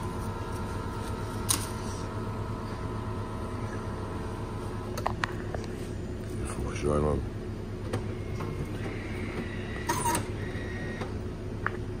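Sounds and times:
coffee machine humming: 0.0s - 12.0s.

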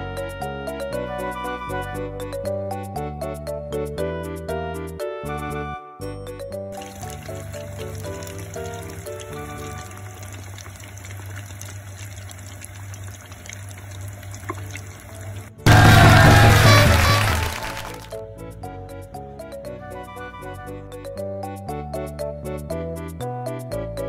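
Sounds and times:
background music: 0.0s - 10.0s, 15.6s - 24.0s
deep-frying oil sizzle: 6.8s - 18.0s.

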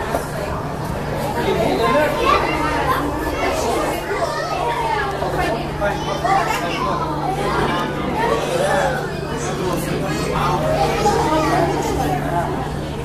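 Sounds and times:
children's voices: 0.0s - 13.0s
indistinct chatter of visitors: 0.0s - 13.0s.

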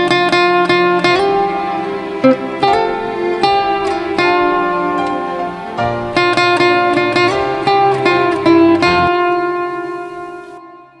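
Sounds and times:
plucked lute notes: 0.0s - 10.6s.

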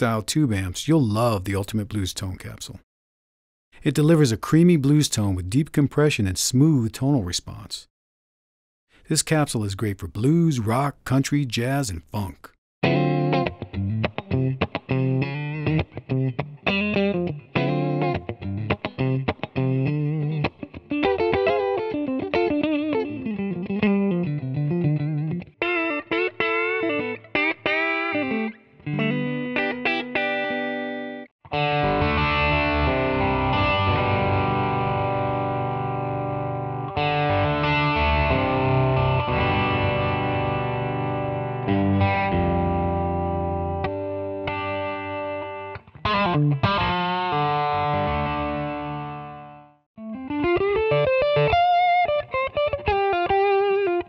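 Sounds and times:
electric guitar licks: 11.6s - 54.0s
electric guitar chords: 12.8s - 54.0s.

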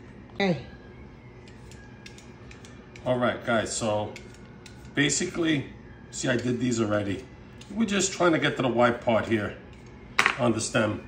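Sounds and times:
vegetable peeler scraping: 1.4s - 5.4s.

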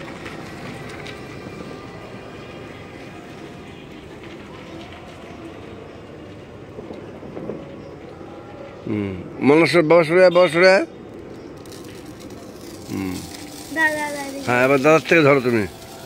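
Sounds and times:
faint distant voices: 0.0s - 16.0s.

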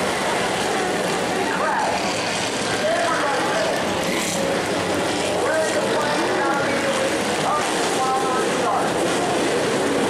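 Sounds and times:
race car engines: 0.0s - 10.0s.

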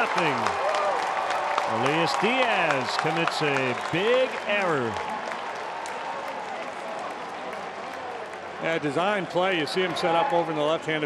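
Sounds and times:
crowd applauding: 0.0s - 10.6s
many voices from stands: 0.0s - 11.0s.

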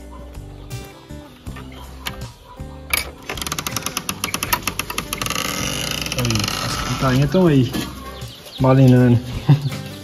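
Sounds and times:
chicks peeping: 0.0s - 2.9s, 6.6s - 10.0s
wooden door clacking open: 2.9s - 7.0s.

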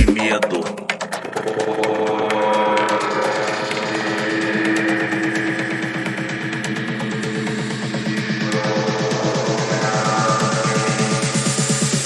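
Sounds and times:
fast percussion ticks: 0.0s - 4.0s
sustained synth chords: 0.8s - 12.0s.

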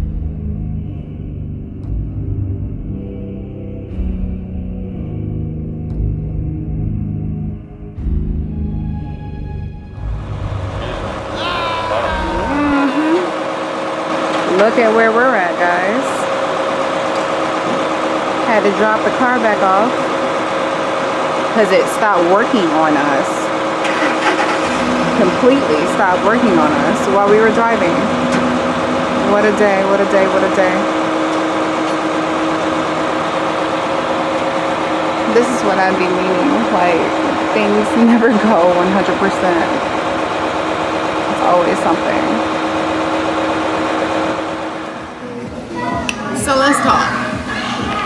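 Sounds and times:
low rumble: 0.0s - 14.0s
truck engine running: 0.0s - 48.0s
voices: 10.8s - 13.8s, 14.4s - 16.3s, 18.4s - 20.2s, 21.5s - 30.9s, 35.2s - 40.0s, 41.3s - 42.6s, 44.9s - 48.0s.

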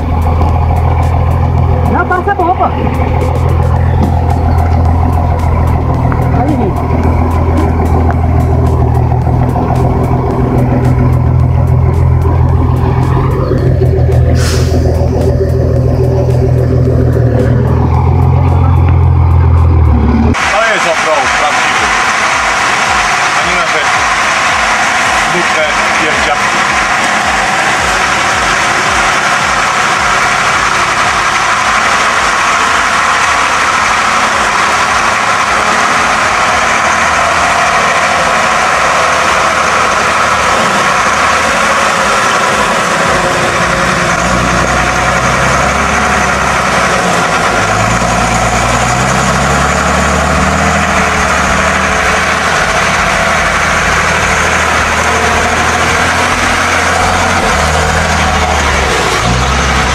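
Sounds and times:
heavy truck engine labouring: 0.0s - 59.9s.

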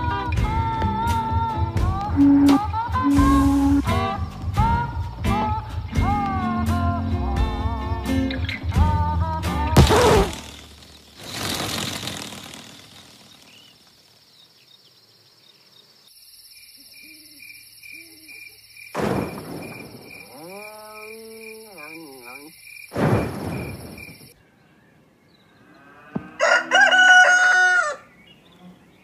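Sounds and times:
cartoon hits: 9.8s - 10.7s.

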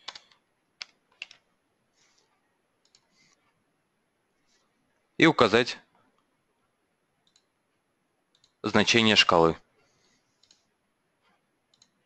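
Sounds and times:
computer keyboard typing: 0.0s - 1.5s, 2.8s - 3.1s, 7.2s - 7.5s, 10.4s - 10.7s, 11.7s - 12.0s
mouse clicks: 2.8s - 3.1s, 7.2s - 7.5s, 10.4s - 10.7s, 11.7s - 12.0s.

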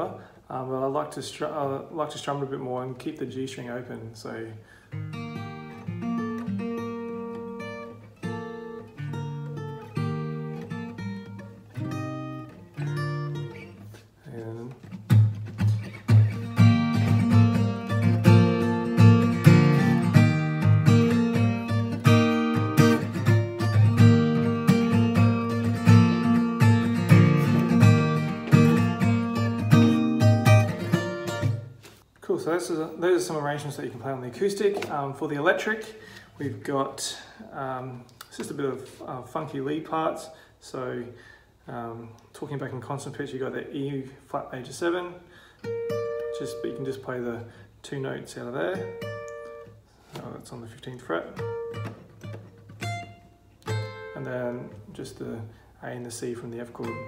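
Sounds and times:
acoustic guitar strumming: 4.9s - 14.0s, 14.7s - 32.0s, 45.6s - 47.0s, 48.7s - 50.4s, 51.1s - 54.9s, 56.6s - 57.0s.

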